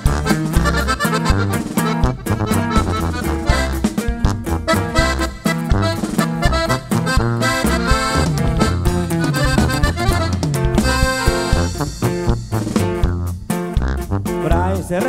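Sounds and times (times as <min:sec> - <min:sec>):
accordion melody: 0:00.0 - 0:15.0
bass line: 0:00.0 - 0:15.0
drums: 0:00.0 - 0:15.0
guitar: 0:00.0 - 0:15.0.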